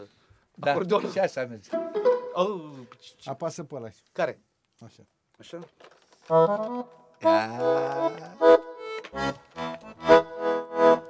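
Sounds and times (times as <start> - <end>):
accordion chords: 1.7 - 2.9, 6.3 - 11.0.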